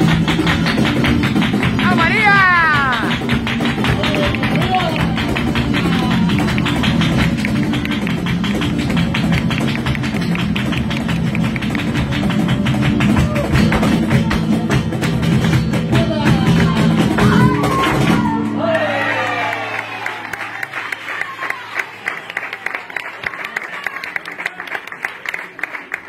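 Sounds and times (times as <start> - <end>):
fast handclaps: 0.0 - 18.2, 20.3 - 26.0
dance footwork on wooden stage: 0.0 - 18.4
person calling out: 1.8 - 3.2.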